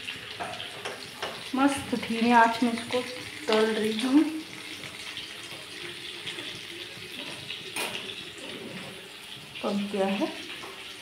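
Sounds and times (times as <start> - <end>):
oil sizzling: 0.0 - 11.0.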